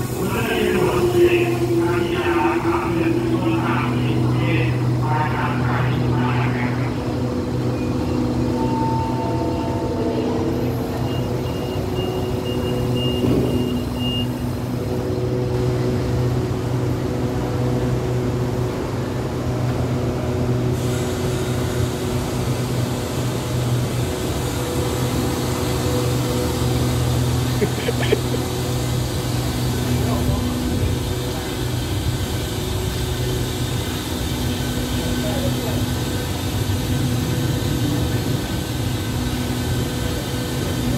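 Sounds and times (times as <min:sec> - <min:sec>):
diesel train idling: 0:00.0 - 0:40.9.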